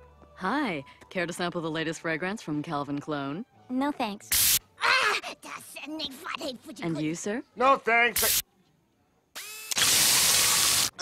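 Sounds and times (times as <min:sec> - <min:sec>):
spray hiss: 0:04.3 - 0:04.6.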